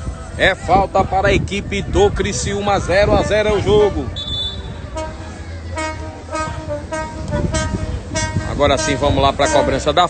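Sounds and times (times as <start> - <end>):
steady low rumble: 0.0 - 10.0
horn tooting: 3.4 - 10.0.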